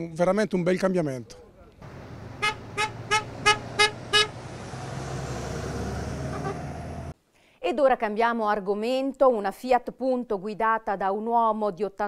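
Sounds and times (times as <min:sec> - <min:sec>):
vehicle engine rumbling: 0:01.5 - 0:07.2
vehicle horn honking: 0:01.9 - 0:04.4, 0:06.2 - 0:06.9.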